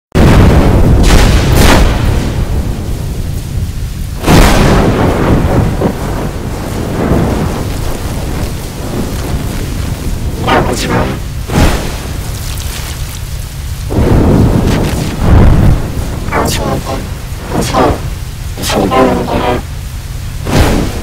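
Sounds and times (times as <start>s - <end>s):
distorted rumbling noise: 0.2s - 21.0s.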